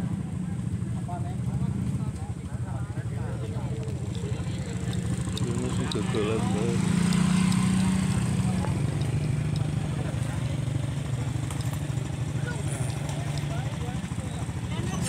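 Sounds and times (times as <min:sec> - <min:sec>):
small motorcycle engine running: 0:00.0 - 0:15.0.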